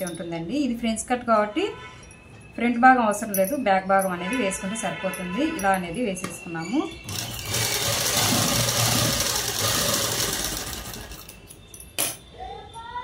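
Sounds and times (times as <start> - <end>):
sewing machine running: 7.0 - 11.3.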